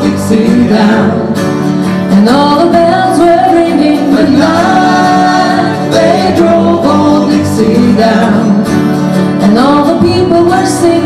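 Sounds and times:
voices singing in harmony: 0.0 - 8.8
strummed acoustic guitars: 0.0 - 11.0.

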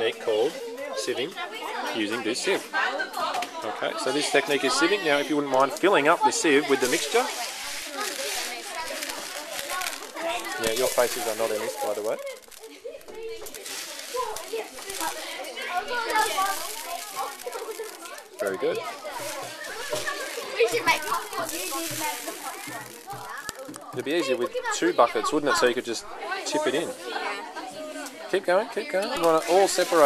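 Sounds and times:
children chattering: 0.0 - 30.0
kernels rattling in plastic tub: 4.7 - 24.4, 29.1 - 30.0.

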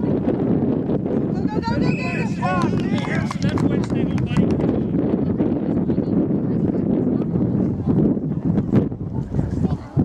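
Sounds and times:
voices in background: 0.0 - 10.0
wind buffeting microphone: 0.0 - 10.0.

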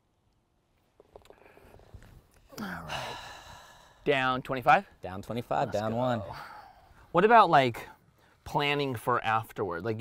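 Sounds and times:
low outdoor background noise: 0.0 - 10.0
man sighing a word: 2.5 - 3.9.

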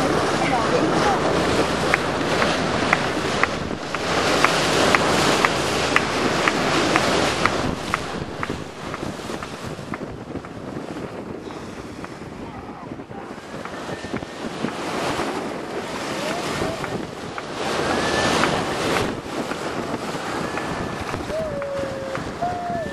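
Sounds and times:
water rushing past boat: 0.0 - 22.9
wind buffeting microphone: 0.0 - 22.9.

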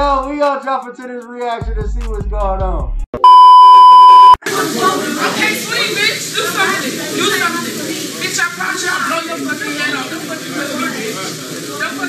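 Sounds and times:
censor bleep tone: 3.2 - 4.4
voices in kitchen: 4.4 - 12.0.

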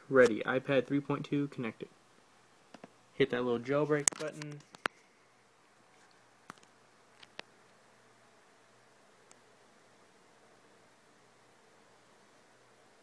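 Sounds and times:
faint room hiss: 0.0 - 13.0.

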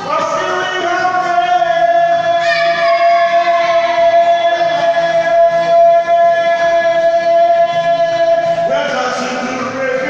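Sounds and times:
acoustic guitar: 0.0 - 10.0
person singing live: 2.1 - 10.0.

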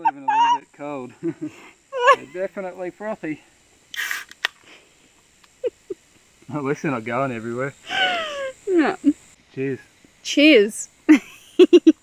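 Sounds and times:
beer can fizzing hiss: 3.4 - 9.4
can opening metallic click: 3.9 - 4.6.

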